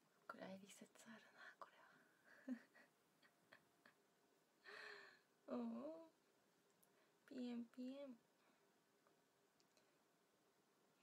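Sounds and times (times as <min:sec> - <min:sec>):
faint sharp clicks: 0:09.0 - 0:09.9.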